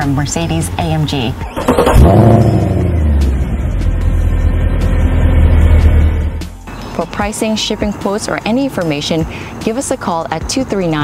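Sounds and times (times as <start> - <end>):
car engine with low exhaust note: 0.0 - 6.6.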